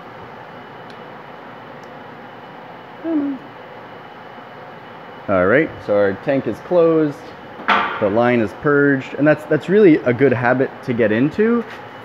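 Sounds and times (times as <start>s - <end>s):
person humming: 3.0s - 3.5s.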